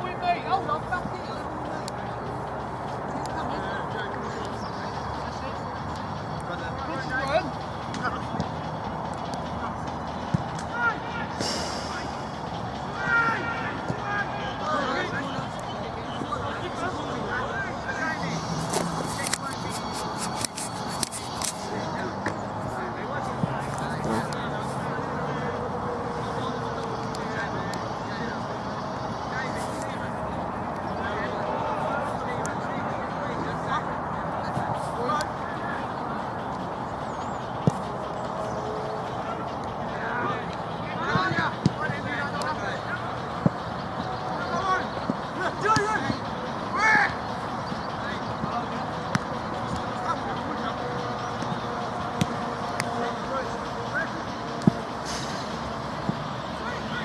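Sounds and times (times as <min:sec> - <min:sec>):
players shouting and chattering: 0:00.0 - 0:57.0.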